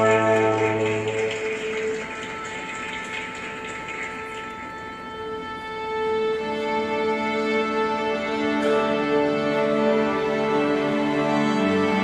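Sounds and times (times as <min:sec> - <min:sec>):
symphony orchestra playing: 0:00.0 - 0:12.0.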